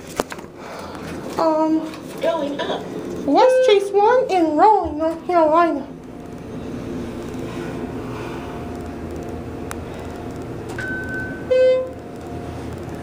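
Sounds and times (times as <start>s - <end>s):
hydraulic elevator hum: 0.0s - 13.0s.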